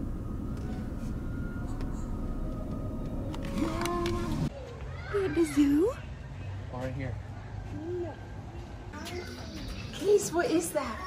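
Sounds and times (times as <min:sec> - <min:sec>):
car interior rumble: 0:00.0 - 0:04.5.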